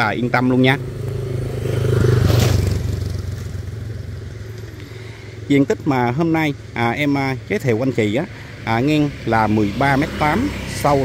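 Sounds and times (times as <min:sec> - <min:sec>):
motorbike passing by: 0:00.0 - 0:11.0.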